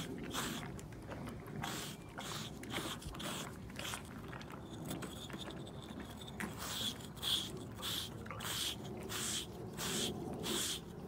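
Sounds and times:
grooming stone scraping horse coat: 0.0 - 11.0.

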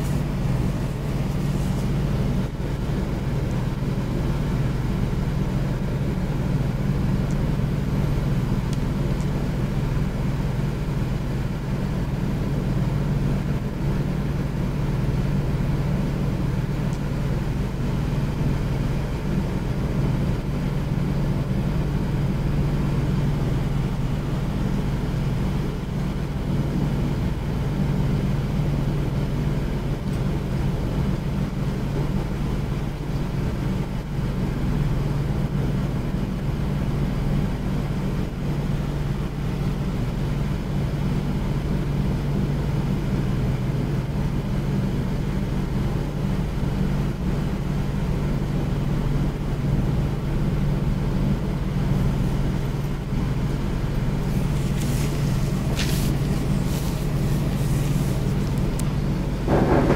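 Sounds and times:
low mechanical hum: 0.0 - 59.9.

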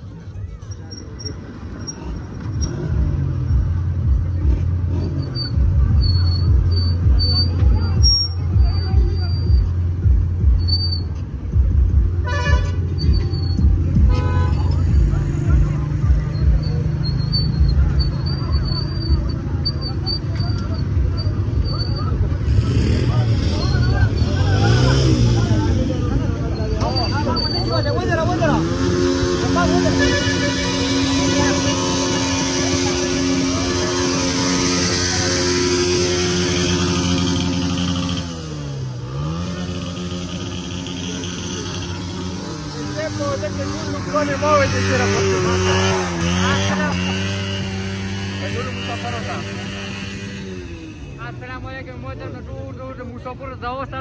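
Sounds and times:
motorcycle engines idling: 0.0 - 54.0
vehicle horn honking: 12.2 - 15.0, 28.6 - 38.2.

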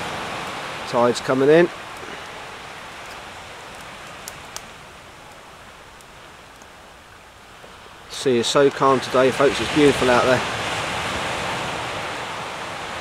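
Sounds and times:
waves washing up a beach: 0.0 - 13.0.

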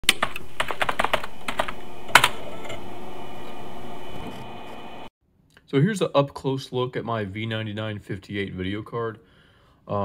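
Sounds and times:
steady background hum: 0.1 - 5.1.

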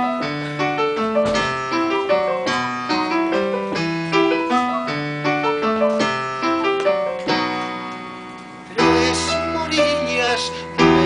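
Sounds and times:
piano playing chords: 0.0 - 11.0.

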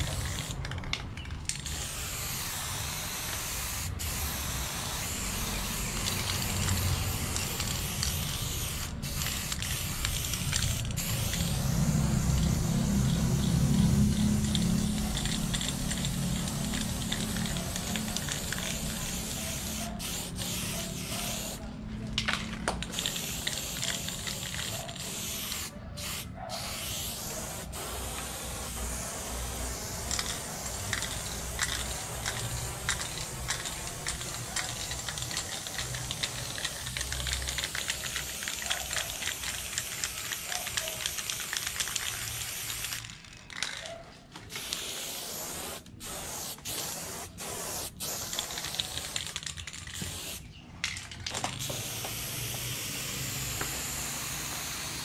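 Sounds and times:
spray paint can hissing: 0.0 - 55.0.

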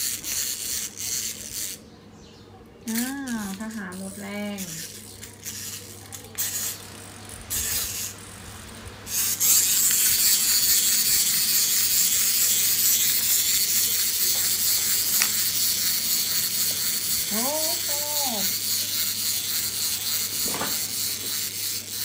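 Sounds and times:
toys electronic buzz: 0.0 - 1.9, 2.8 - 22.0.

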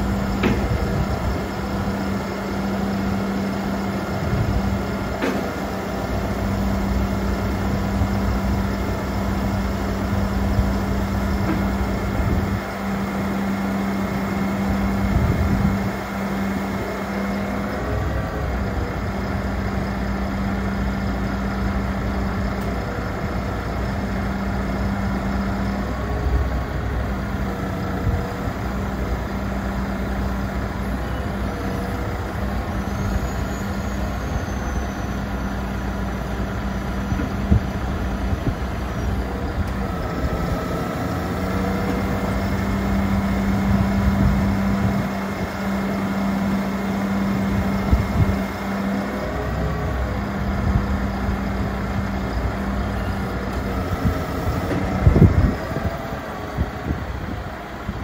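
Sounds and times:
diesel truck engine running: 0.0 - 58.0
hydraulic crane hum: 0.0 - 58.0.

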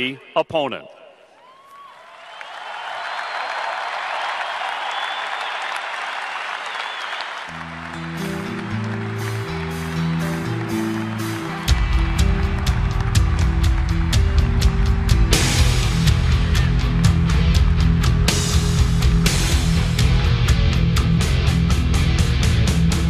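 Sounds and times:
crowd applauding and cheering: 1.4 - 23.0
music with drum hits: 11.7 - 23.0.

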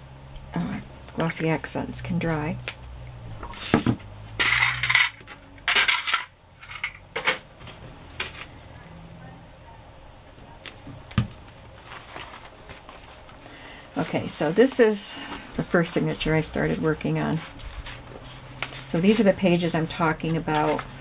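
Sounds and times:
metal charms rattling in plastic box: 4.4 - 7.0.

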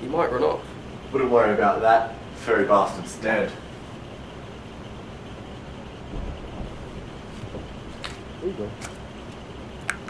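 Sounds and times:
room tone hiss and hum: 0.0 - 10.0
low rumble: 5.8 - 8.8.

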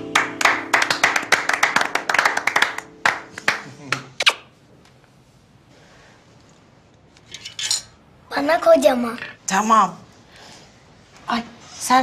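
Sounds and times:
people clapping: 0.0 - 4.3.

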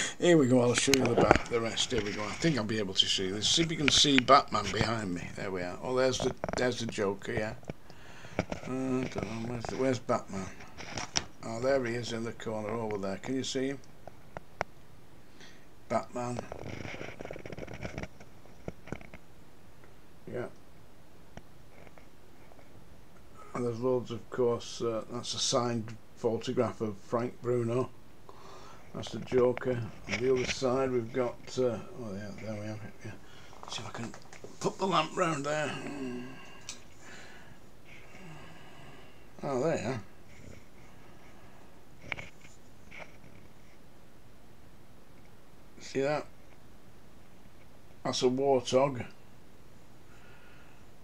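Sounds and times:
low hiss: 0.0 - 51.0
camera handling crackling and rustling: 16.4 - 19.2.

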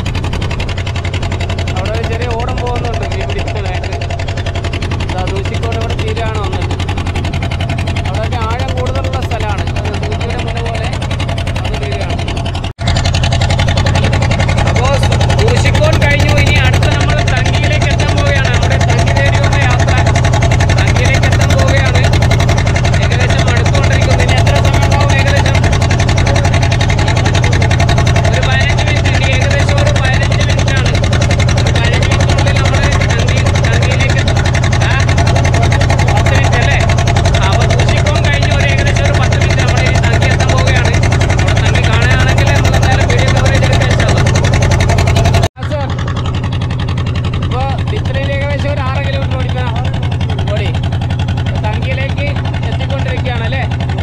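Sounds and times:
motorboat engine droning: 0.0 - 54.0
people talking: 1.5 - 6.9, 7.9 - 12.4, 13.7 - 44.8, 45.6 - 46.0, 47.4 - 54.0.

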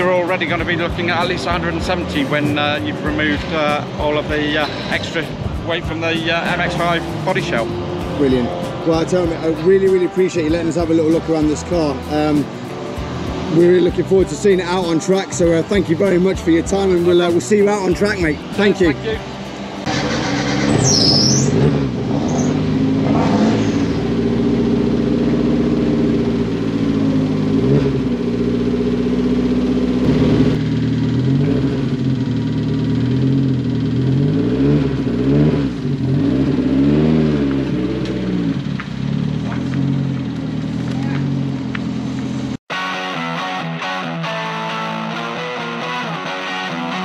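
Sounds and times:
car engine idling and revving: 0.0 - 42.7.

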